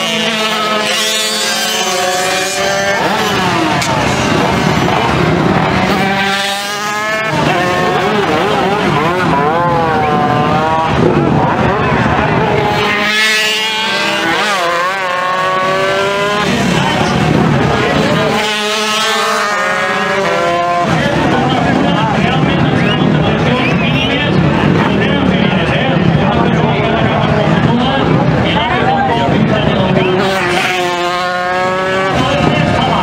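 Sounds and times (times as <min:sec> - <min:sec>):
racing motorcycles revving past: 0:00.0 - 0:21.8.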